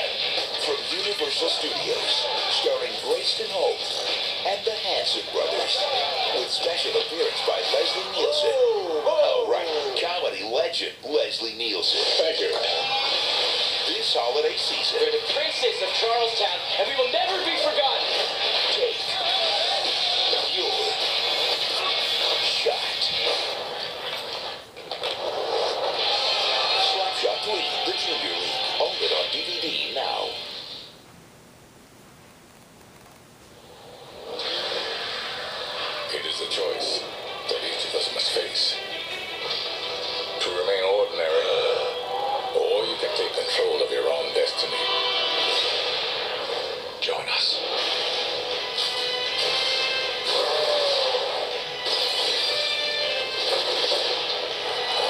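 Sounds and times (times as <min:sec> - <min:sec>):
film soundtrack from small speaker: 0:00.0 - 0:55.0.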